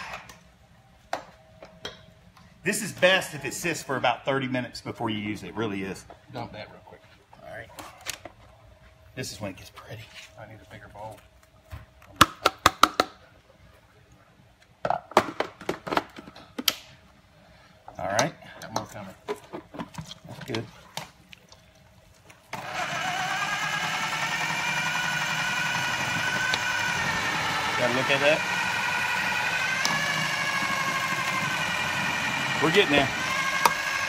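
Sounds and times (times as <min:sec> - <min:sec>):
food processor motor: 0:22.5 - 0:34.0.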